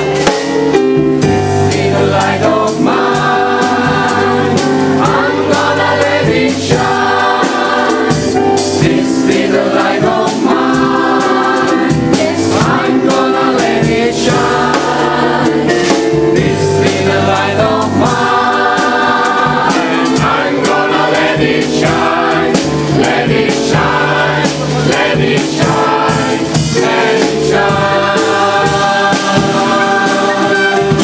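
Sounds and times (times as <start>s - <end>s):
gospel choir singing: 0.0s - 31.0s.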